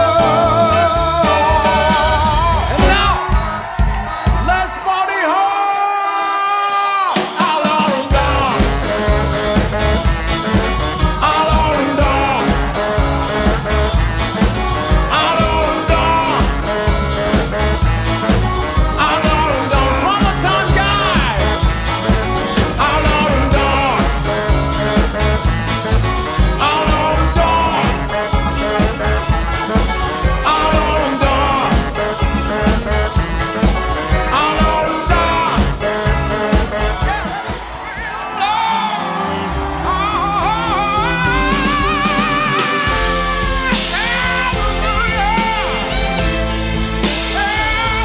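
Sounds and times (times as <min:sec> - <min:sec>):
upright bass: 0:00.0 - 0:04.8, 0:07.9 - 0:38.0, 0:39.2 - 0:48.0
live band playing swing: 0:00.0 - 0:05.1, 0:06.6 - 0:48.0
person singing: 0:00.0 - 0:25.5, 0:26.2 - 0:48.0
drums: 0:00.0 - 0:48.0.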